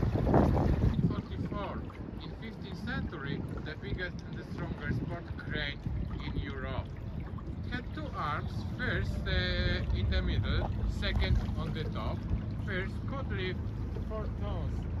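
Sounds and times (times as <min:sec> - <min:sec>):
boat engine low rumble: 0:00.0 - 0:15.0
wind on microphone: 0:00.0 - 0:15.0.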